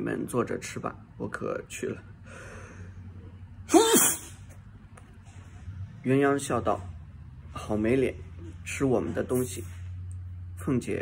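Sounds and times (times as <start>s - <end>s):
man sneezing: 3.6s - 4.5s.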